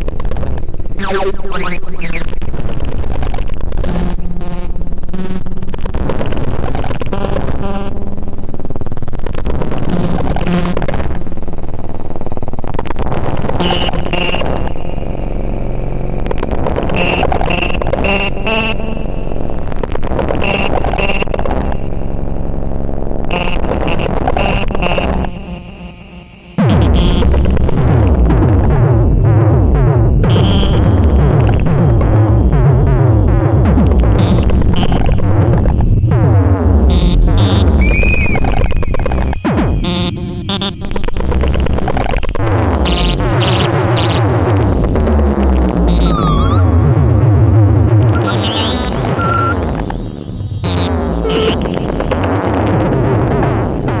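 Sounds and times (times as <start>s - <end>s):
chopped noise bursts: 0.0s - 11.4s, 30.2s - 54.0s
heavy bass: 0.0s - 54.0s
noisy electronic music: 0.0s - 54.0s
falling synth sweep: 1.0s - 2.5s, 45.9s - 50.4s.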